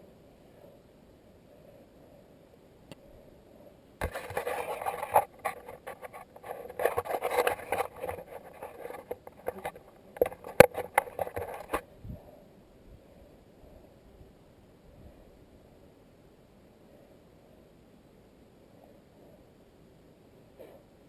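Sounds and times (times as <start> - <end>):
sharp clicks and knocks: 4.0 - 11.8
microphone handling rubbing: 4.0 - 11.9.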